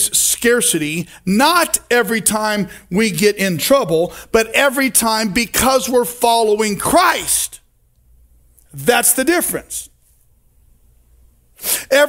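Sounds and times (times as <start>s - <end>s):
man sharply inhaling: 11.6s - 11.9s.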